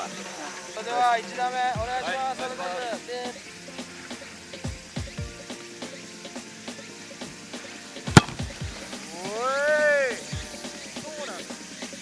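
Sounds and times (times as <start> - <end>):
background music: 0.0 - 12.0
soccer ball kicked thump: 8.2 - 8.6.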